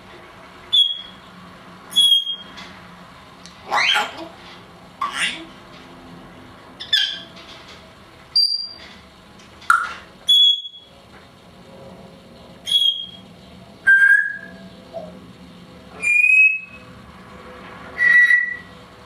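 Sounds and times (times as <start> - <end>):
parrot whistling: 0.7 - 1.2, 1.9 - 2.4, 8.4 - 8.8, 9.7 - 10.9, 12.6 - 13.2, 13.8 - 15.2, 16.0 - 16.8, 18.0 - 18.7.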